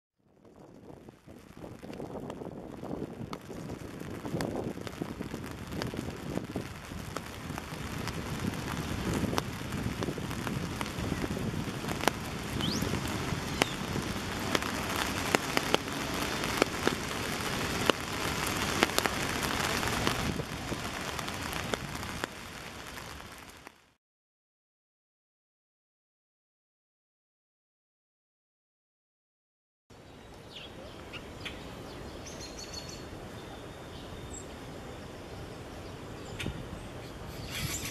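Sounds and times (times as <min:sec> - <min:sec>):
rain falling: 0:00.3 - 0:24.0
raindrop ticks: 0:00.4 - 0:23.8.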